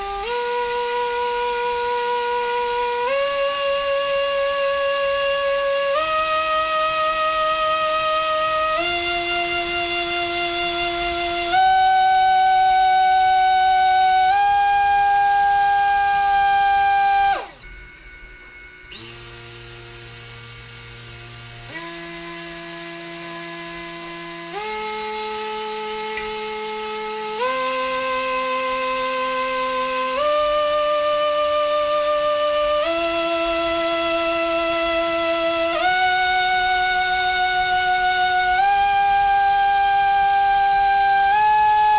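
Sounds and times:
drone motor whine: 0:00.0 - 0:41.9.

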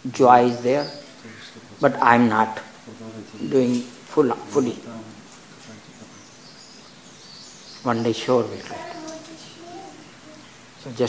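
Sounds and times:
man speaking: 0:00.0 - 0:06.3, 0:07.8 - 0:08.9, 0:10.8 - 0:11.0
faint high chirping: 0:00.0 - 0:11.0
low background noise: 0:00.0 - 0:11.0.

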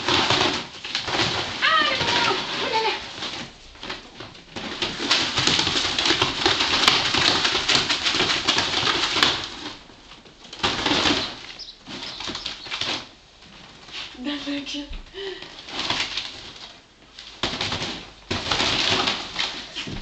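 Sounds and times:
ferrets clucking: 0:10.8 - 0:13.0.

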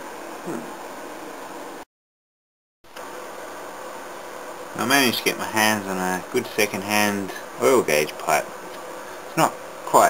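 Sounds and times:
room tone hiss: 0:00.0 - 0:01.9, 0:02.9 - 0:10.0
person murmuring: 0:00.4 - 0:00.7.

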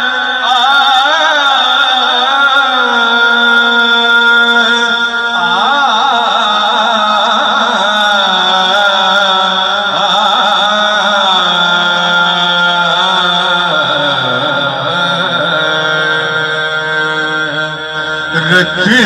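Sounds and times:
man singing devotional song: 0:00.0 - 0:19.0.

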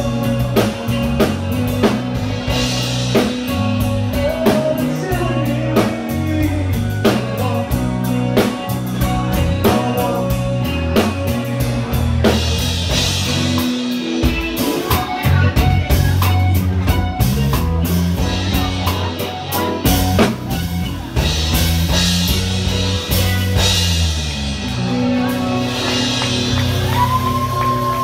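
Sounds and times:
electric bass: 0:00.0 - 0:28.0
electric guitar: 0:00.0 - 0:28.0.

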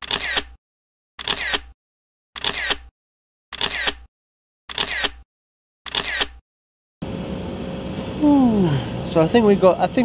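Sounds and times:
camera shutter click: 0:00.0 - 0:00.6, 0:01.2 - 0:01.7, 0:02.4 - 0:02.9, 0:03.6 - 0:04.1, 0:04.7 - 0:05.2, 0:05.9 - 0:06.4.

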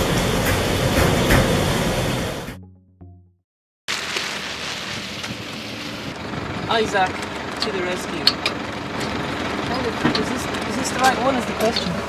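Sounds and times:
steady outdoor hiss: 0:03.9 - 0:08.3.

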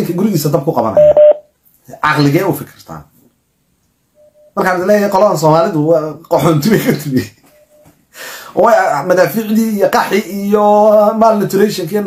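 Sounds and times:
man talking: 0:00.0 - 0:01.2, 0:01.8 - 0:03.1, 0:04.6 - 0:07.4, 0:08.6 - 0:12.0
loud electronic beep: 0:01.0 - 0:01.4.

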